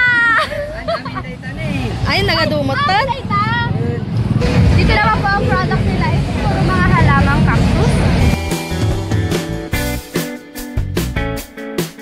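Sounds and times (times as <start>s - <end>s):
people talking and laughing: 0.0s - 8.4s
low rumble: 3.2s - 9.7s.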